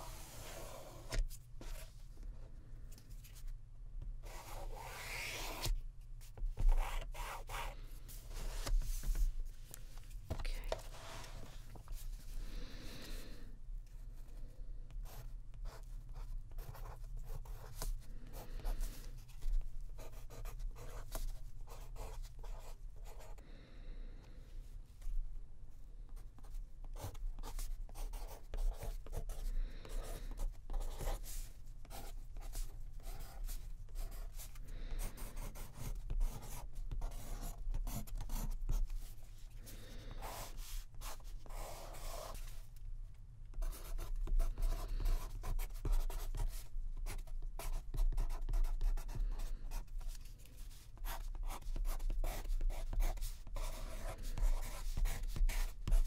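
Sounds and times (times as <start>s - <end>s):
pen scratching on paper: 15.0s - 19.0s, 20.0s - 23.4s, 26.9s - 38.8s, 40.2s - 42.4s, 43.6s - 50.1s, 50.7s - 56.0s.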